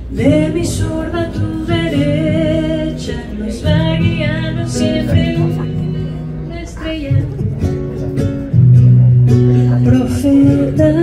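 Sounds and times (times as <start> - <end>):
person singing: 0.0 - 7.8, 9.5 - 11.0
acoustic guitar: 0.0 - 11.0
ukulele: 0.0 - 11.0.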